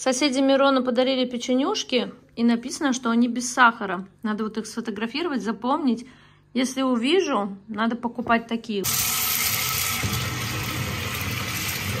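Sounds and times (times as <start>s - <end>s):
tap water pouring into bathtub: 8.9s - 12.0s.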